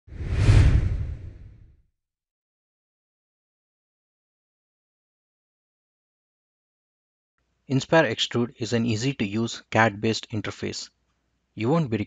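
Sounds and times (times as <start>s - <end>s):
whoosh with deep rumble: 0.1s - 1.7s.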